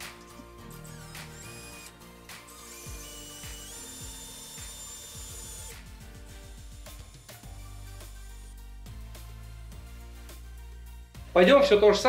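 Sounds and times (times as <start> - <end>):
cordless drill whirring: 0.0 - 8.5
background music: 0.0 - 12.0.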